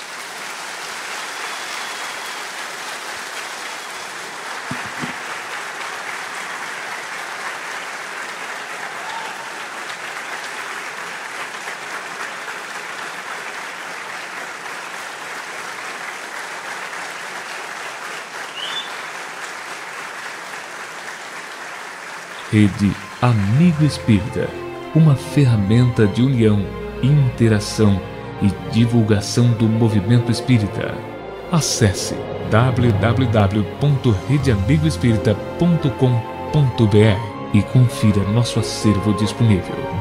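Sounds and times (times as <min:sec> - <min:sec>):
audience applauding: 0:00.0 - 0:25.1.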